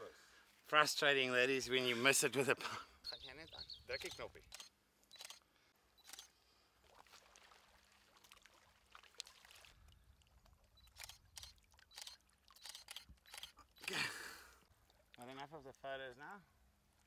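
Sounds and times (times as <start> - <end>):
camera shutter clicks: 4.0 - 5.4, 6.0 - 6.3, 10.9 - 14.0.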